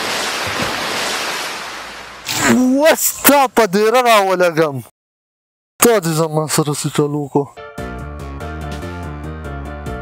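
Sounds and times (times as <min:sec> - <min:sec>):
muddy water splashing: 0:00.0 - 0:03.0.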